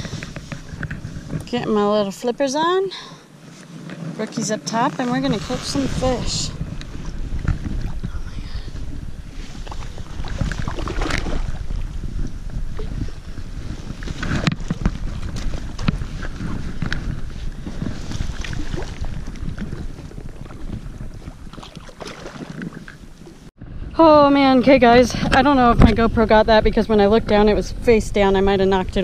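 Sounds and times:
wind buffeting microphone: 0.0s - 3.0s, 4.0s - 29.0s
water movement: 0.0s - 29.0s.

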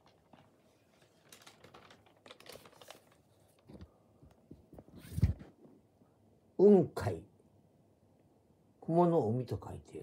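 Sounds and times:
paper sheets rustling and clicking: 0.0s - 5.5s.

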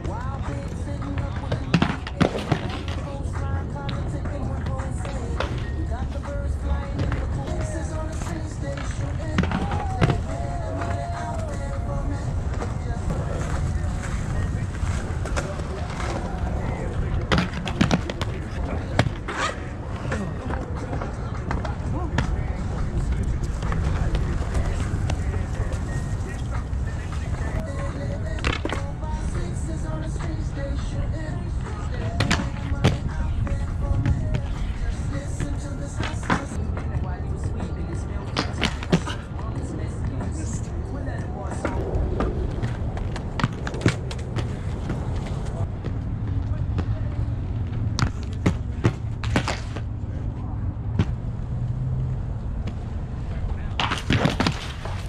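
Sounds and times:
skates knocking and clacking: 0.0s - 49.9s, 52.6s - 55.0s
inline skate wheels rolling on concrete: 0.0s - 55.0s.

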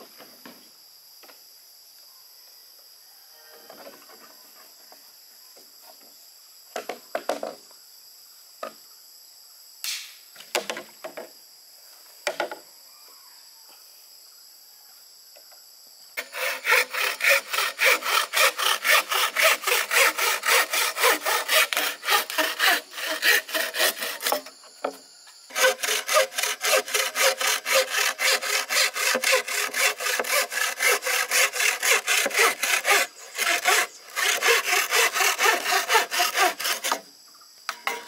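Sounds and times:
faint insect buzz: 0.0s - 38.0s
bow saw rasping through bamboo: 16.2s - 37.1s.

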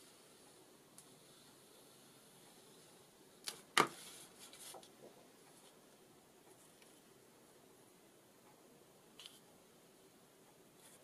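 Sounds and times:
card slapping on table: 3.5s - 4.0s.

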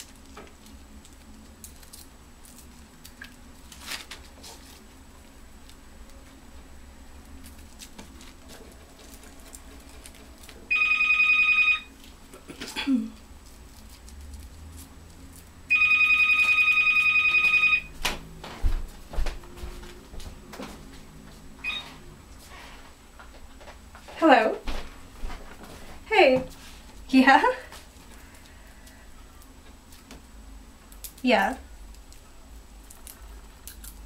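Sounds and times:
telephone ringing electronic trill: 10.7s - 11.9s, 15.7s - 17.9s, 21.6s - 21.9s.

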